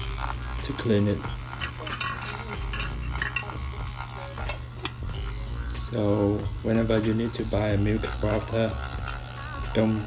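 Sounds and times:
milk frother motor hum: 0.0s - 10.0s.

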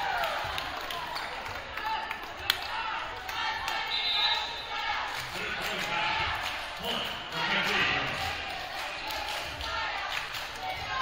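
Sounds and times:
players shouting in a gym: 0.0s - 11.0s.

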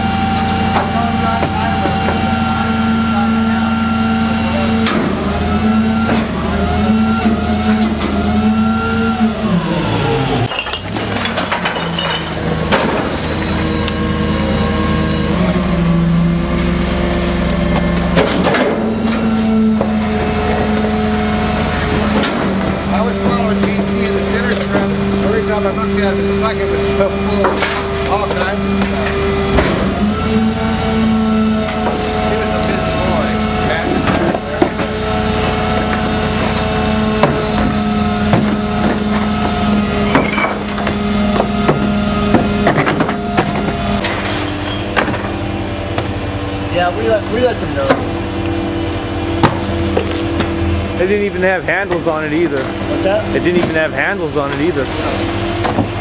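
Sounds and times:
garbage truck engine and hydraulics: 0.0s - 56.0s
trash clanking and crunching: 0.2s - 9.1s, 10.4s - 56.0s
trash can banged against hopper: 10.8s - 13.6s, 17.7s - 20.8s, 55.4s - 56.0s.

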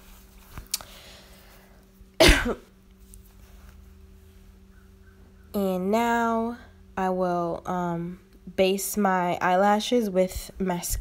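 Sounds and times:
woman coughing: 2.2s - 2.7s.

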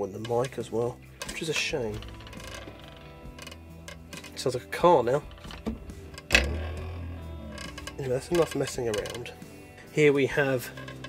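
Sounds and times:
wooden desk creaking: 0.0s - 9.7s, 10.4s - 11.0s.

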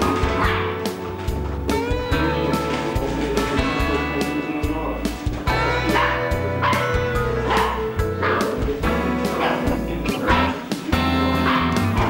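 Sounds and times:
music with steady beat: 0.0s - 12.0s
puppies yipping: 0.0s - 12.0s.

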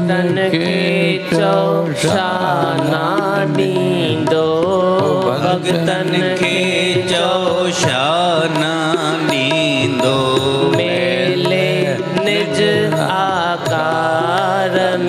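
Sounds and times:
person singing devotional song: 0.0s - 15.0s
sustained instrumental accompaniment: 0.0s - 15.0s.

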